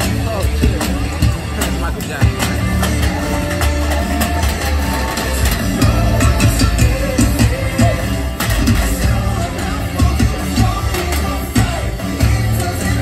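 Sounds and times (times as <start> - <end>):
live amplified band music: 0.0 - 13.0.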